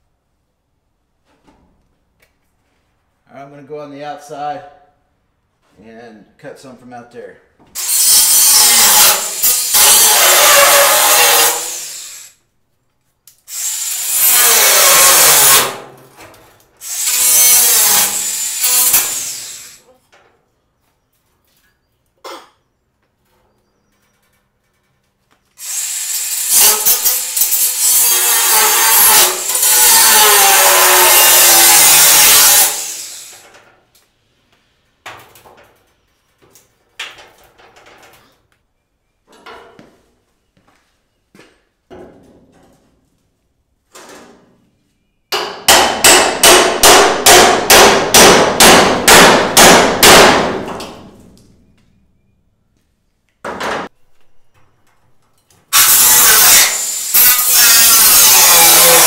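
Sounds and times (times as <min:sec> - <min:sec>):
angle grinder cutting steel: 0:07.8 - 0:12.3, 0:13.5 - 0:15.9, 0:16.8 - 0:19.8, 0:25.6 - 0:33.4, 0:55.7 - 0:59.0.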